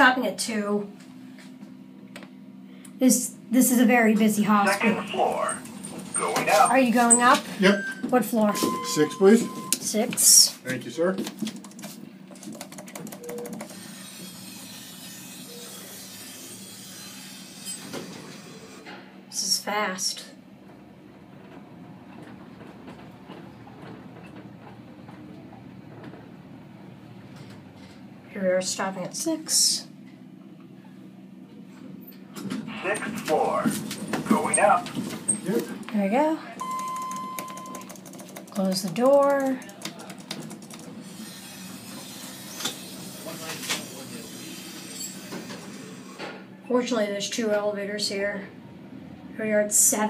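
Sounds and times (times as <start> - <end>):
elevator low rumble: 0.0 - 10.6, 17.3 - 37.9, 40.0 - 50.0.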